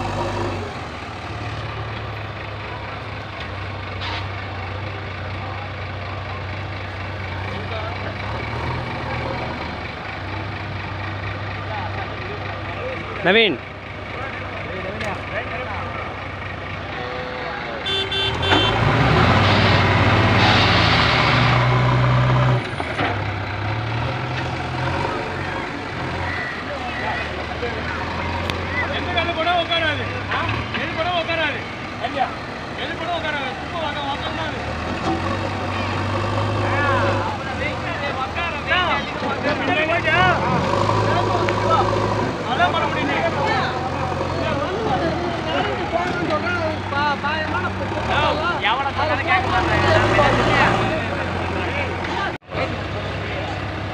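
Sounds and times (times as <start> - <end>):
heavy diesel engines revving: 0.0 - 53.9
people talking and calling out: 0.0 - 53.9.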